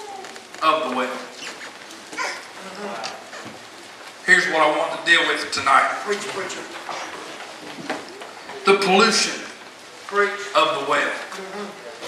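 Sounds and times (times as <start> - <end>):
congregation murmuring responses: 0.0 - 12.0
steady hiss: 0.0 - 12.0
man's voice echoing in hall: 0.6 - 1.3, 4.2 - 7.3, 8.6 - 11.3.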